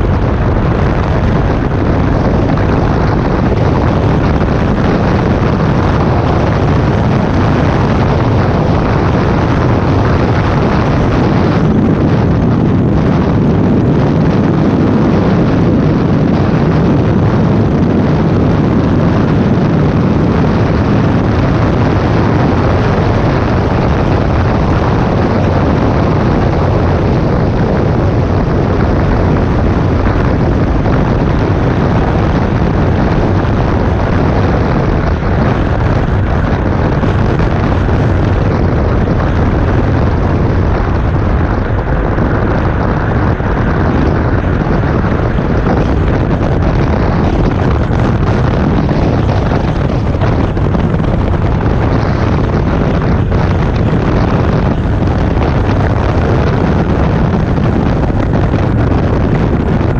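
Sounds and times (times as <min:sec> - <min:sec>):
wind on microphone: 0:00.0 - 0:59.9.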